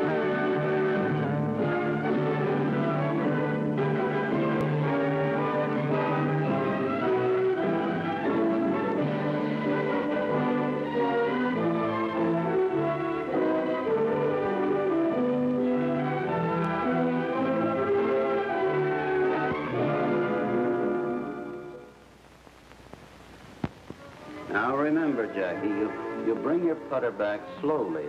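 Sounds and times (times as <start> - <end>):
orchestral music led by brass: 0.0 - 22.0, 24.2 - 28.0.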